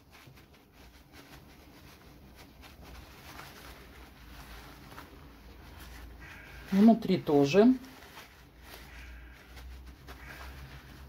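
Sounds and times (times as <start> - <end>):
paper towel rubbing fish skin: 0.0 - 11.0.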